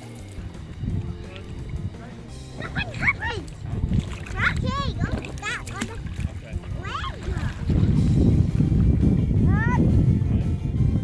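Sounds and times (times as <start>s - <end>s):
water splashing: 0.0s - 9.7s.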